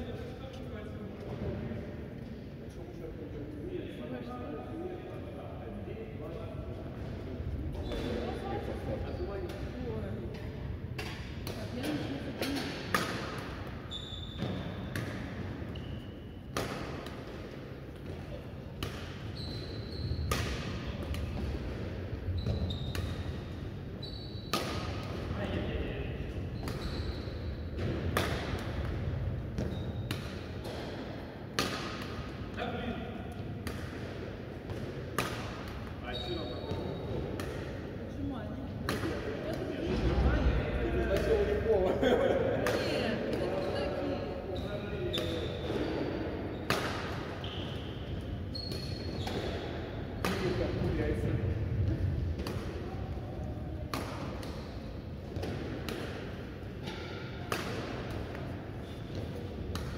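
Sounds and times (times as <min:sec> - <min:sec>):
shoes squeaking on court floor: 0:07.6 - 0:09.8, 0:13.8 - 0:16.6, 0:18.0 - 0:21.6, 0:22.2 - 0:25.5, 0:26.4 - 0:28.6, 0:29.5 - 0:31.0, 0:35.4 - 0:38.3, 0:42.8 - 0:50.9, 0:56.8 - 0:59.9
racket hitting shuttlecock: 0:10.3 - 0:13.8, 0:14.4 - 0:15.8, 0:16.5 - 0:23.5, 0:24.4 - 0:25.3, 0:27.8 - 0:32.6, 0:33.3 - 0:36.0, 0:36.8 - 0:37.9, 0:38.8 - 0:40.0, 0:42.6 - 0:43.5, 0:46.6 - 0:47.8, 0:48.7 - 0:50.6, 0:51.9 - 0:59.9.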